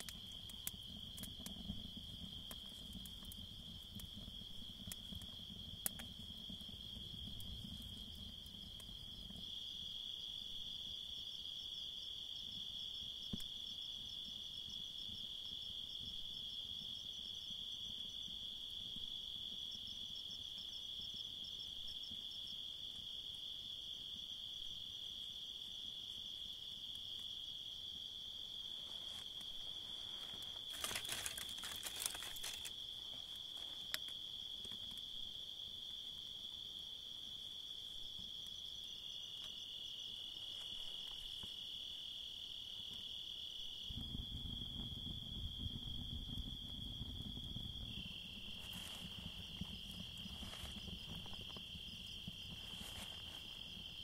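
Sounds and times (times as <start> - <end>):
crickets chirping: 0.0 - 54.0
rustling crackle: 28.6 - 35.0, 40.3 - 41.5, 44.0 - 54.0.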